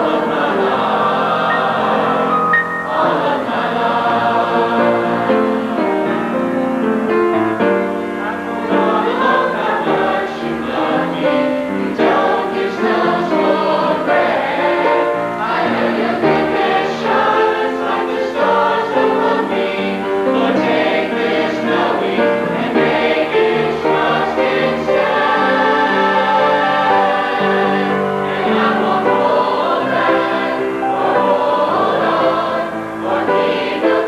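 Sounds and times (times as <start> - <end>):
youth choir singing: 0.0 - 6.6, 7.4 - 34.0.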